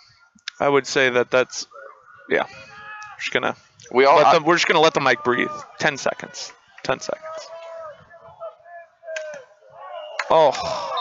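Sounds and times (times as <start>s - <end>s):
man exclaiming: 4.0s - 6.4s, 10.3s - 11.0s.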